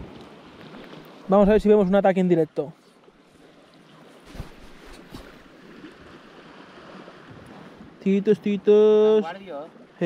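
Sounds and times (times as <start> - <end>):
waves lapping against concrete: 0.0 - 10.0.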